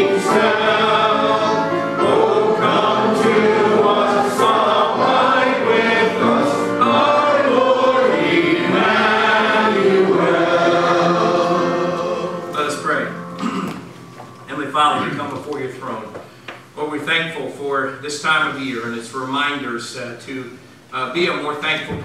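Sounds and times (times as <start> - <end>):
congregation singing a hymn: 0.0 - 13.6.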